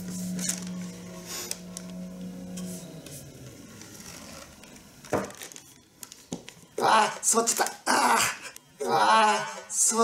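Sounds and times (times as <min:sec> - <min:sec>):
packing paper crinkling: 0:00.0 - 0:02.0, 0:03.7 - 0:06.7, 0:07.4 - 0:07.8.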